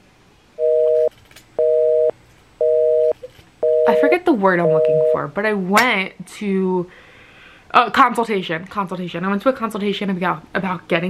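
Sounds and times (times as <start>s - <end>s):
telephone busy signal beeps: 0.6s - 5.2s.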